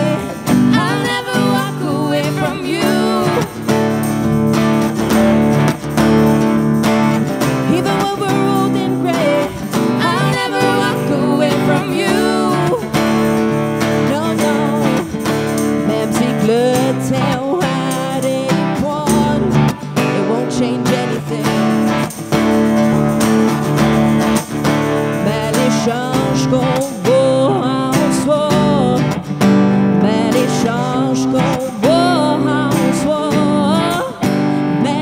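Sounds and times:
lead and backing vocals: 0.0s - 4.8s, 7.4s - 22.2s, 25.0s - 35.0s
electric guitar: 0.0s - 35.0s
strummed acoustic guitar: 0.0s - 35.0s
tambourine: 0.0s - 35.0s.

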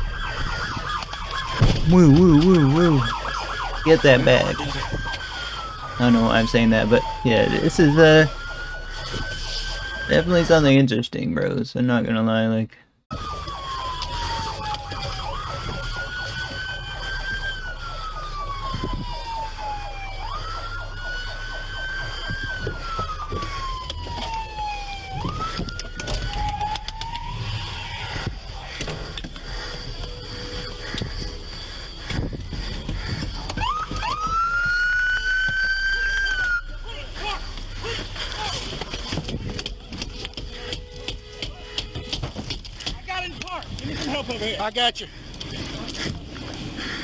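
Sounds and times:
engine and road rumble: 0.0s - 10.9s, 13.0s - 47.0s
police siren wailing: 0.0s - 11.0s, 13.1s - 47.0s.

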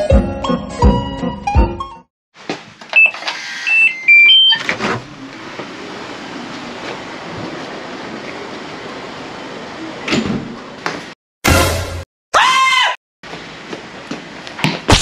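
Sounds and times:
electronic door lock beeps: 3.0s - 4.7s.

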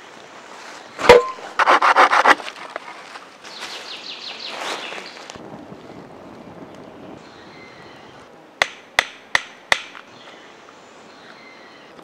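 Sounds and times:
rustle: 0.0s - 8.6s
sharp hammer strikes: 8.6s - 10.0s.

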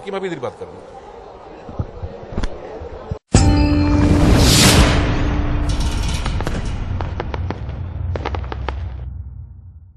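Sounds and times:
sharp crackles: 5.7s - 9.3s.

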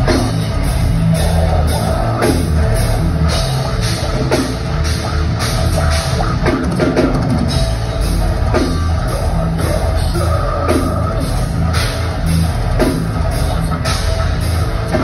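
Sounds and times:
bass: 0.0s - 15.0s
distorted guitars: 0.0s - 15.0s
drums driving beat: 0.0s - 15.0s.

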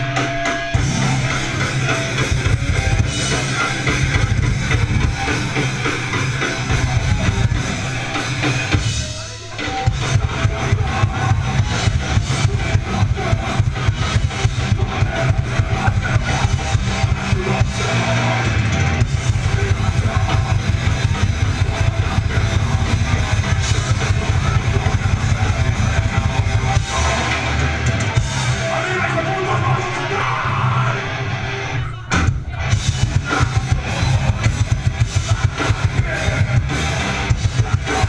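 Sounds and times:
drum kit fast rhythm: 0.0s - 30.2s, 32.1s - 38.0s
live rock band: 0.0s - 38.0s.

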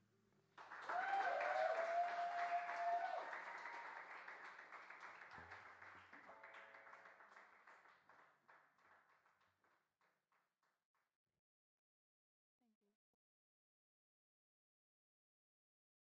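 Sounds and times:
audience applauding: 0.6s - 9.1s
person cheering: 0.9s - 3.4s.

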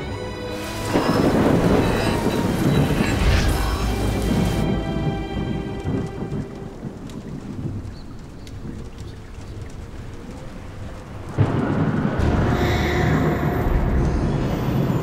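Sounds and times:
steady rain: 0.0s - 15.0s
thunder rumbling: 0.0s - 15.0s
water drips: 0.5s - 15.0s
sudden loud crash: 12.1s - 15.0s.

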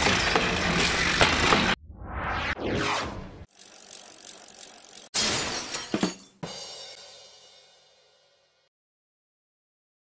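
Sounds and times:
loud sweeping whoosh: 1.8s - 3.5s
crash of breaking glass: 5.2s - 6.6s.

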